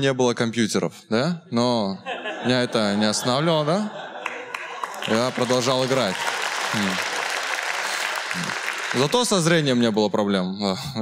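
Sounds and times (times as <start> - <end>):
audience clapping: 4.1 - 10.0.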